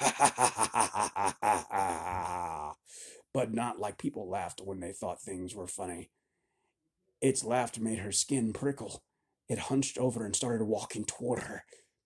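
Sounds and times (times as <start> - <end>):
man doing monster laugh: 0.0 - 2.8
man groaning: 0.0 - 2.8.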